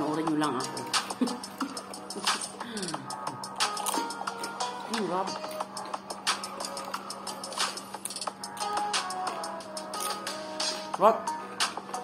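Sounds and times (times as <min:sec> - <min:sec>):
background music: 0:00.0 - 0:12.0
chips crunching when chewed: 0:03.6 - 0:04.7.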